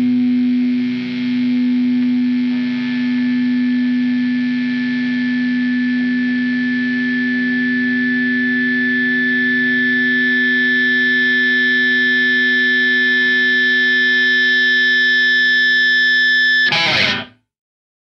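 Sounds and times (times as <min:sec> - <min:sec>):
distorted electric guitar chord ringing: 0:14.2 - 0:17.4.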